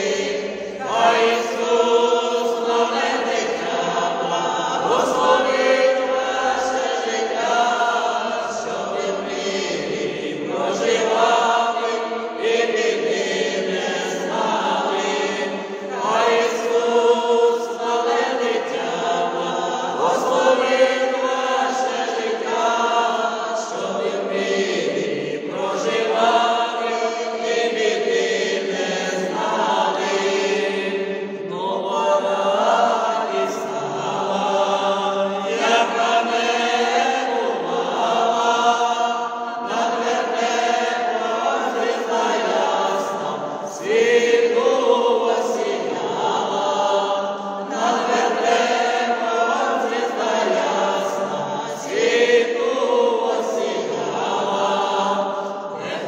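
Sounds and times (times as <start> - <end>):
mixed choir singing a cappella: 0.0 - 56.0.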